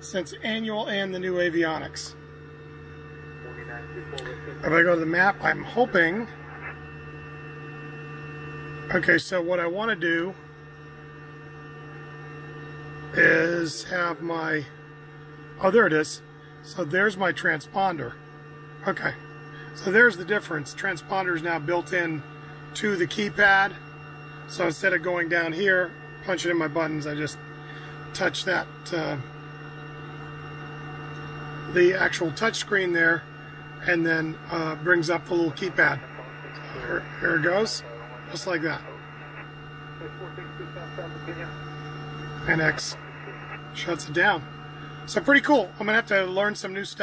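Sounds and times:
steady electrical hum: 0:00.0 - 0:47.0.

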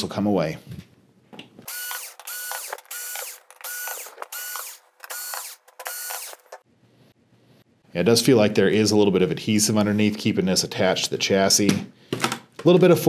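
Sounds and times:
electric screwdriver whining: 0:01.7 - 0:06.6.

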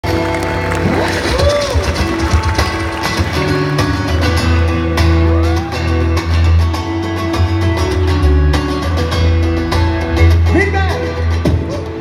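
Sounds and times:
acoustic guitar: 0:00.0 - 0:12.0
live pop music through pa: 0:00.0 - 0:12.0.

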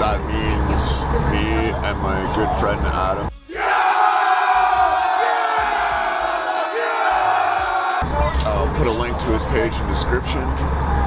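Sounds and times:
stadium crowd cheering: 0:03.4 - 0:08.8.

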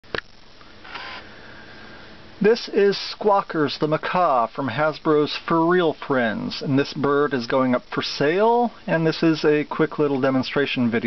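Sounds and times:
faint background hum: 0:00.0 - 0:11.0
soft rush of noise: 0:00.0 - 0:11.0.

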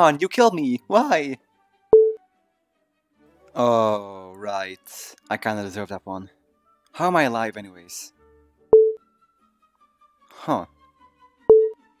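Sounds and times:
short electronic beep: 0:11.5 - 0:11.8.

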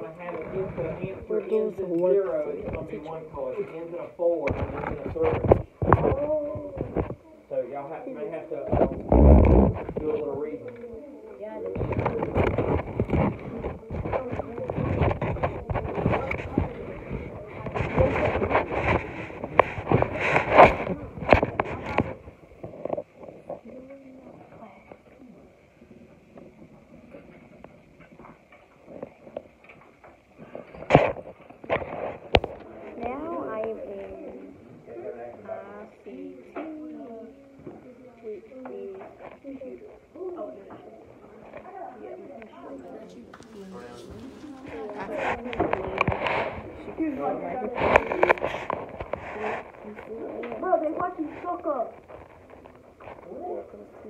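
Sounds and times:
muffled voices: 0:00.0 - 0:54.0
microphone rubbing on jacket: 0:08.7 - 0:10.4, 0:11.8 - 0:23.6, 0:43.4 - 0:53.6.

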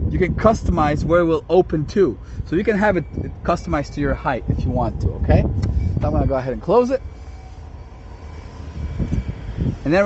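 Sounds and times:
wind rumble on microphone: 0:00.0 - 0:10.0
power liftgate motor whine: 0:02.6 - 0:06.4, 0:07.0 - 0:10.0.

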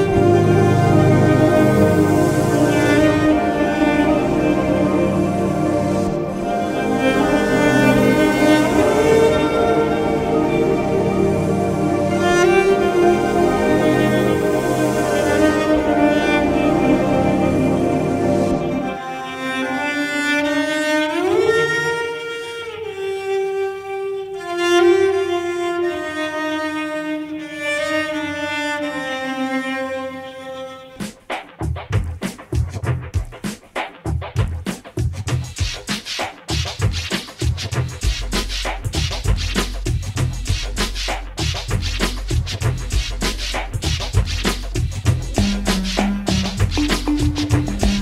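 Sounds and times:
slow bowed string music: 0:00.0 - 0:31.0, 0:44.9 - 0:48.0
bowed strings with held notes: 0:45.3 - 0:48.0.

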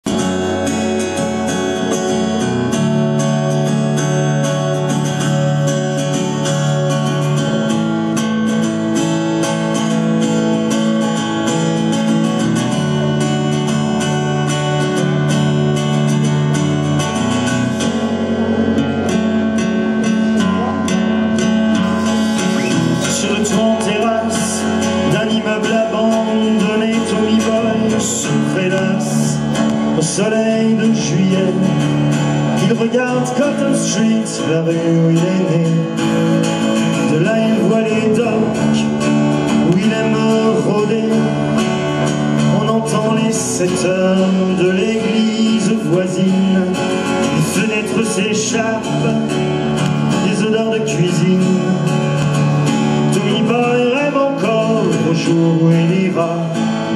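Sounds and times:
strummed acoustic guitars: 0:00.0 - 0:56.9
sustained keyboard chords: 0:00.1 - 0:56.9
drum kit: 0:18.9 - 0:25.0.

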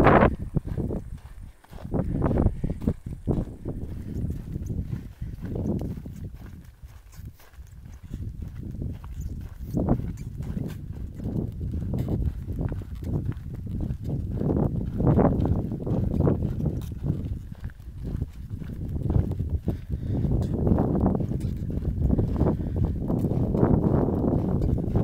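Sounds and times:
footsteps on dirt trail: 0:00.0 - 0:25.0
wind buffeting microphone: 0:00.0 - 0:25.0.

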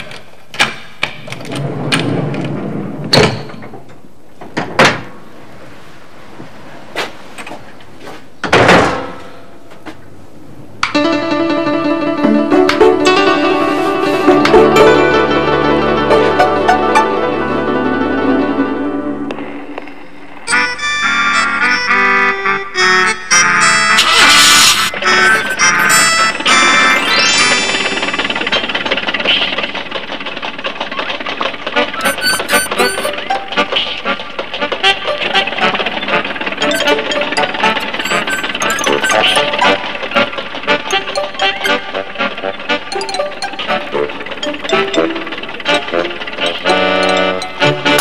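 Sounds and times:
door being pulled open: 0:32.0 - 0:33.2.

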